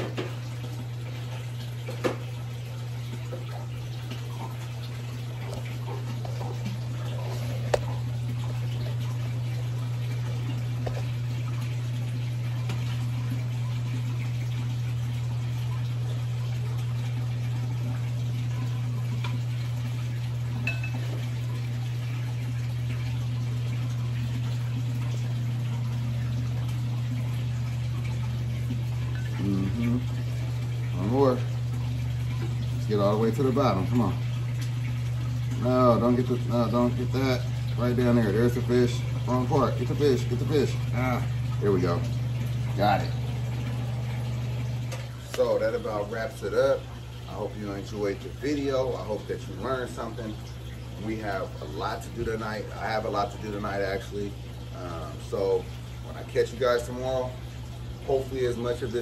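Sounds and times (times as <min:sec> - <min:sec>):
water trickling into tank: 0:00.0 - 0:59.0.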